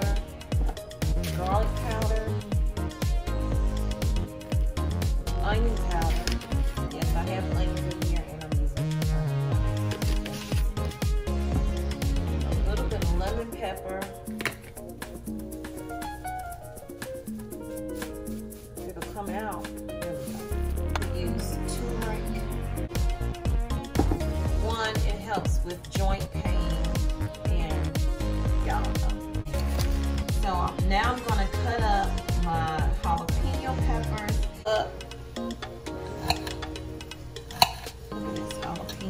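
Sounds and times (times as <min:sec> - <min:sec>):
heavy bass line: 0:00.0 - 0:13.5, 0:20.4 - 0:24.9, 0:26.1 - 0:34.5
background music with beat: 0:00.0 - 0:39.0
knife clicking on plate: 0:37.5 - 0:38.0.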